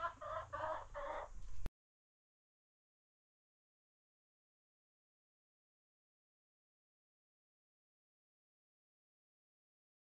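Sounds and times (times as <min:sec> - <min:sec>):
chicken clucking: 0:00.0 - 0:01.4.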